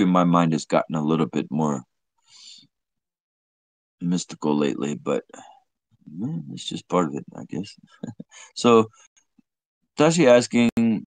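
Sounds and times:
faint breath: 2.2 - 2.7, 8.3 - 9.1.

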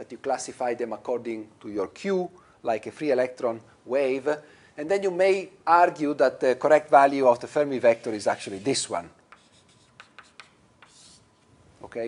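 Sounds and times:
chalk scratching on blackboard: 7.7 - 11.5.

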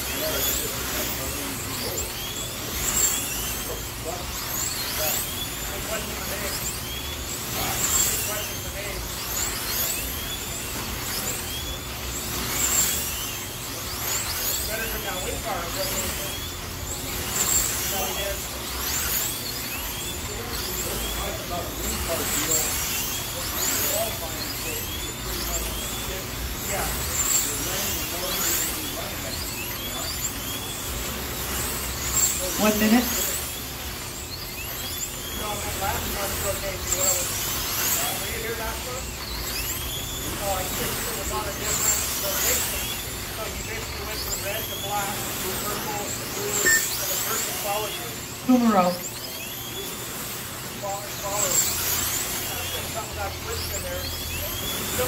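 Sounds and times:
slot car motors whining: 0.0 - 55.0.

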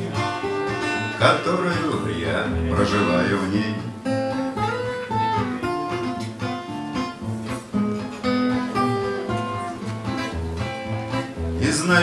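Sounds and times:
acoustic guitar picked melody: 0.0 - 12.0.

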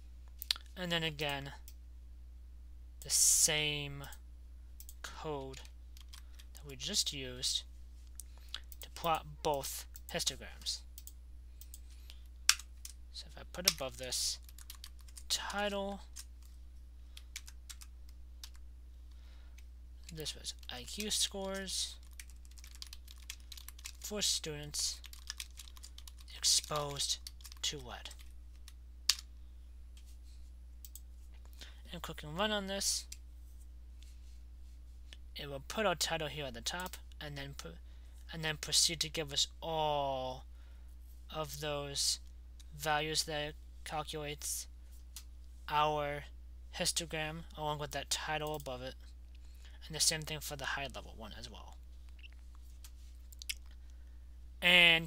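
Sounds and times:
low steady hum: 0.0 - 55.0
soft clicks: 11.0 - 11.8, 30.8 - 31.5.

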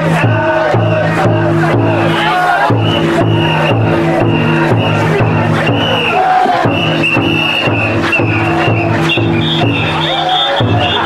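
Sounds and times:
crowd voices: 0.0 - 11.0
people chanting: 0.0 - 11.0
taiko drum beating: 0.0 - 11.0.

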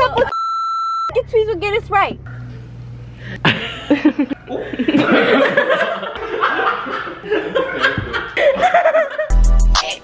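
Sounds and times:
group of people laughing: 0.0 - 0.3, 3.4 - 9.3.

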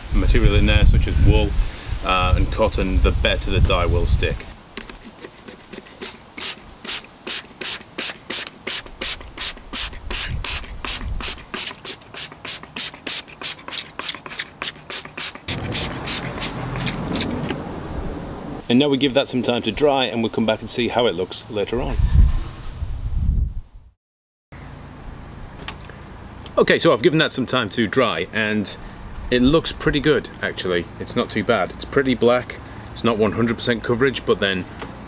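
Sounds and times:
wind buffeting microphone: 0.0 - 4.6, 9.9 - 11.4, 21.8 - 23.7
spray bottle squirting mist: 4.8 - 17.3.

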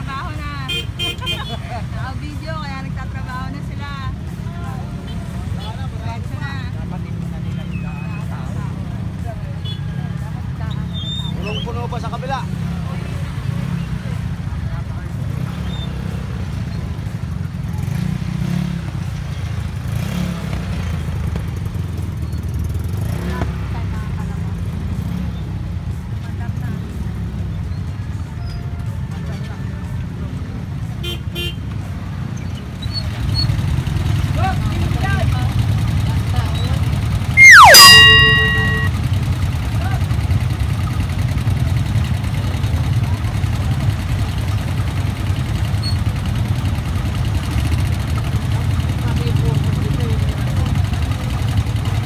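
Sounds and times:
motorcycle engines idling: 0.0 - 52.0.

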